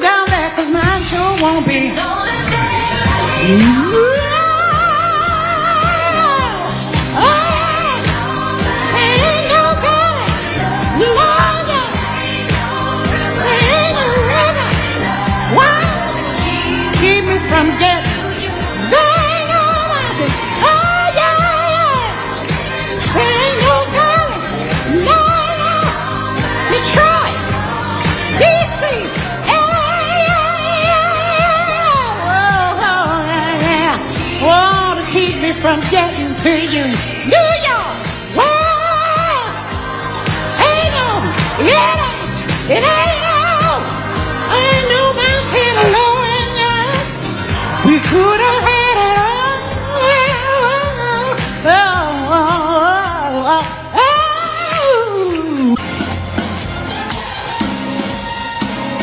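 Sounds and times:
person singing with vibrato: 0.0 - 55.8
band accompaniment: 0.0 - 59.0.

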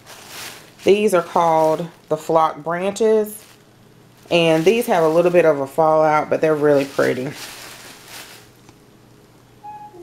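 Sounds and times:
rustling of flower stems: 0.0 - 8.6.

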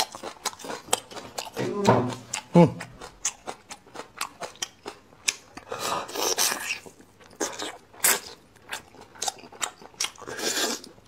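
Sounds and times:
wet chewing and lip-smacking: 0.0 - 11.0
slurping from a bone: 10.2 - 11.0.

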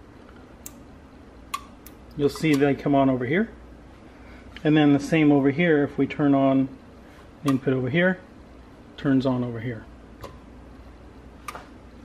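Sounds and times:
small switches clicking: 0.6 - 0.8, 1.5 - 2.8.

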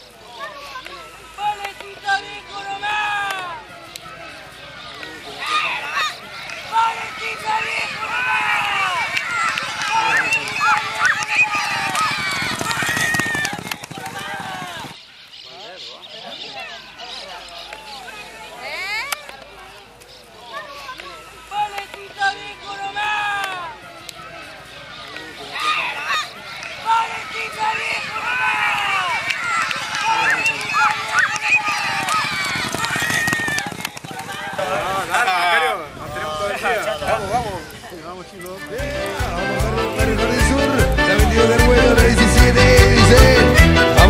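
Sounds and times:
people shouting: 0.0 - 15.0, 20.4 - 44.0
spectators yelling: 0.0 - 15.0, 20.4 - 44.0
hoofbeats galloping on dirt: 6.8 - 15.0, 27.2 - 35.3.

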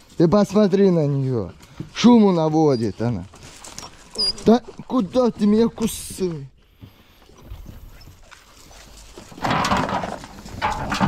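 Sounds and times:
puppy crying: 4.2 - 4.6.

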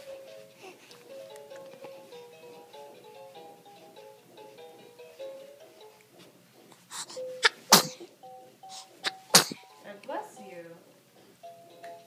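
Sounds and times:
baby sneezing: 7.0 - 8.1, 8.8 - 9.6.

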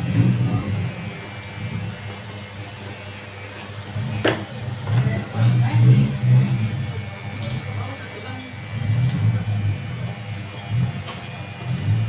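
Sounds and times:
electric hair clipper cutting hair: 0.0 - 12.0.

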